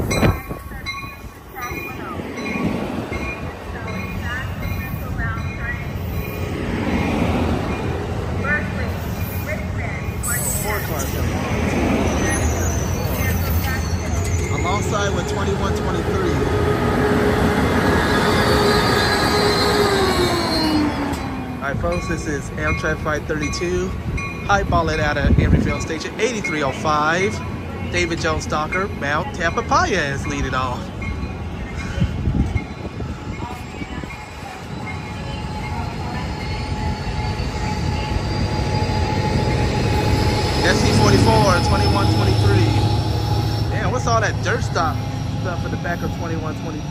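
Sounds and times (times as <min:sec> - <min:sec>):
locomotive tone sliding down: 0:00.0 - 0:23.1, 0:29.6 - 0:46.9
train wheels rumbling on rail: 0:00.0 - 0:46.9.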